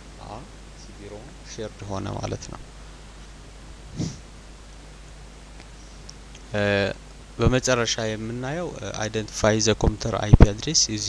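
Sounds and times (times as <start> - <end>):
faint low hum: 0.0 - 11.0
person breathing close to microphone: 3.9 - 4.2.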